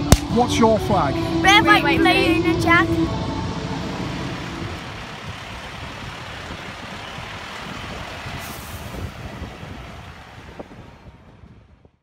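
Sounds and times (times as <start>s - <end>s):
heavy vehicle engine rumble: 0.0s - 12.0s.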